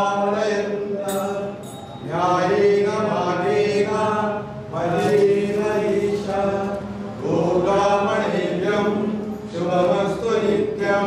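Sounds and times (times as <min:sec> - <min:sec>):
person chanting devotional mantra: 0:00.0 - 0:11.0.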